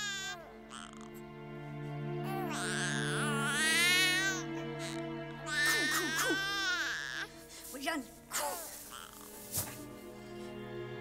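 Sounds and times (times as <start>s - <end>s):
newborn baby crying: 0.0s - 1.2s, 2.2s - 7.4s, 8.3s - 9.4s
soft background music: 0.0s - 11.0s.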